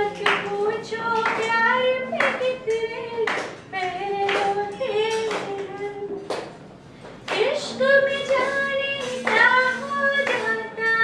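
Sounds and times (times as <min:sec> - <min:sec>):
woman singing into a microphone: 0:00.0 - 0:06.4, 0:07.3 - 0:11.0
hand claps: 0:00.1 - 0:00.6, 0:01.2 - 0:01.6, 0:02.2 - 0:02.5, 0:03.2 - 0:06.6, 0:07.2 - 0:07.6, 0:08.2 - 0:10.7.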